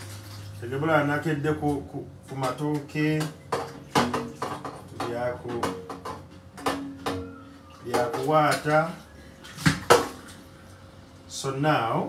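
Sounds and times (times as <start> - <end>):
metal tray clattering in sink: 2.4 - 7.3
man talking: 4.9 - 5.8, 7.8 - 9.0.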